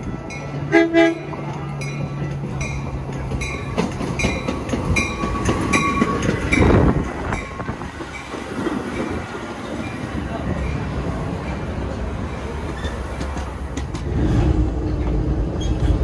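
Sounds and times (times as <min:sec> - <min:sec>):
rush of train noise: 0:00.0 - 0:16.0
train wheels clicking over rail joints: 0:00.0 - 0:16.0.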